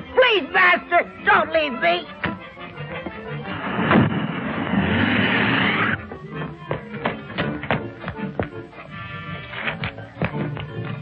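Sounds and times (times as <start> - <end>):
film soundtrack music: 0.0 - 11.0
loud rushing noise: 3.5 - 6.0.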